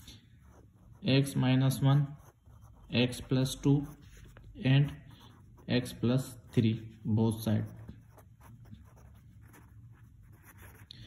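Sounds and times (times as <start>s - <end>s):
pen scratching on paper: 0.0s - 11.0s
person speaking: 0.0s - 11.0s.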